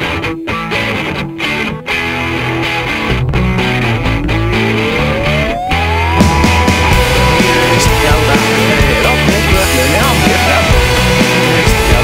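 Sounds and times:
guitar note gliding upward: 0.0 - 12.0
rock song with distorted guitar: 0.0 - 12.0.

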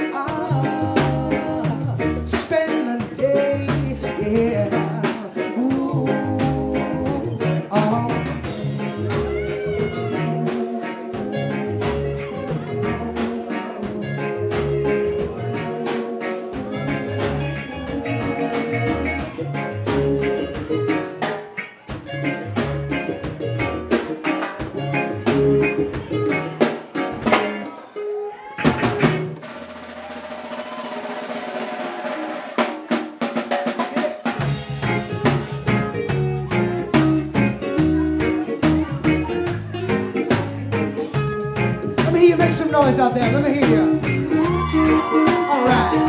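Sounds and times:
reggae band playing: 0.0 - 46.0.

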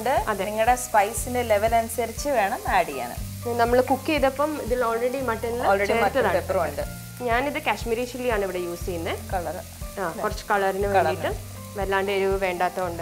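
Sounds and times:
background music with melody: 0.0 - 13.0
onions sizzling in frying pan: 0.0 - 13.0.

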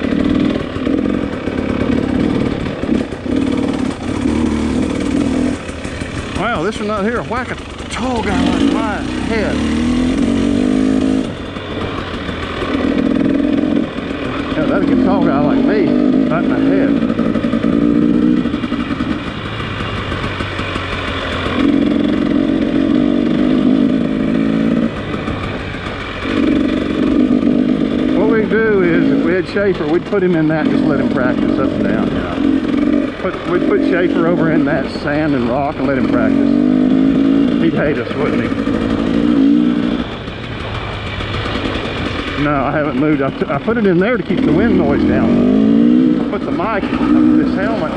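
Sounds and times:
dirt bike engine revving: 0.0 - 47.9.

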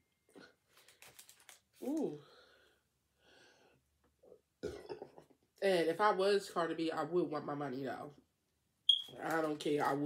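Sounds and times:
woman's muffled burp: 4.6 - 5.0.

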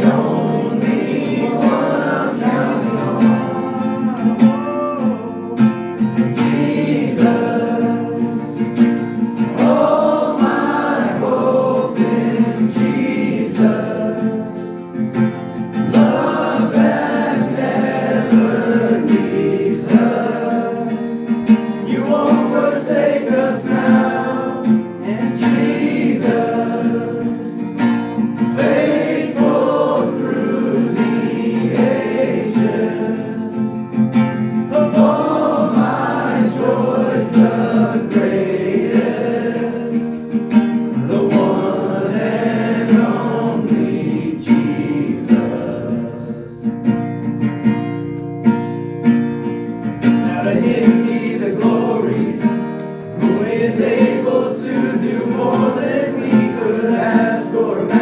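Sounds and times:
group of voices singing: 0.0 - 46.9, 49.9 - 58.0
acoustic guitar strumming: 0.0 - 58.0.

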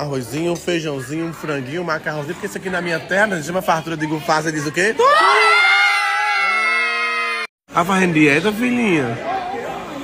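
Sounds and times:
young people shouting together: 5.0 - 7.5.

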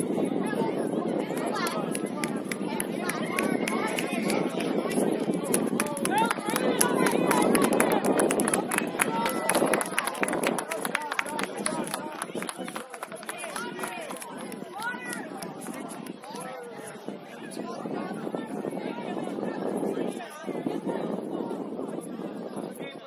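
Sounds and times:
many voices calling out outdoors: 0.0 - 23.0.

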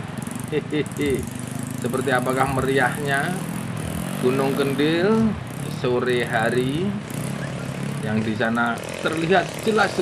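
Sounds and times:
man speaking: 0.5 - 3.5, 4.2 - 7.0, 8.0 - 10.0.

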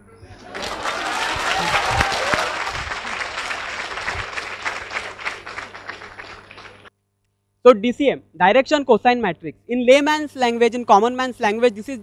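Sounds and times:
audience applause: 0.4 - 6.9.

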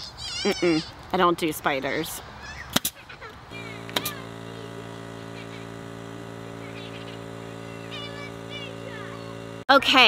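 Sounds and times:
air compressor humming: 3.4 - 10.0
sharp click: 3.9 - 4.2.

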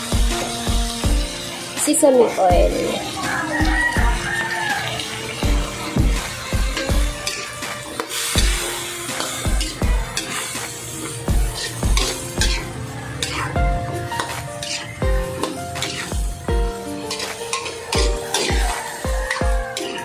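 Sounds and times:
background music with drum beat: 0.0 - 20.0
vegetables sizzling in oil: 0.0 - 20.0
spatula stirring in a pan: 2.6 - 20.0.

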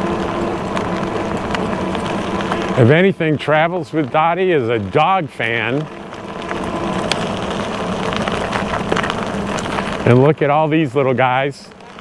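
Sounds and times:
faint steady hum: 0.0 - 12.0
tyres on gravel: 0.0 - 12.0.

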